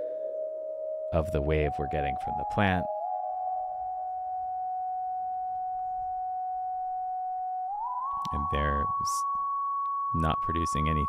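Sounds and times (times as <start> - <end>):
synthesized sine-wave tone: 0.0 - 11.0.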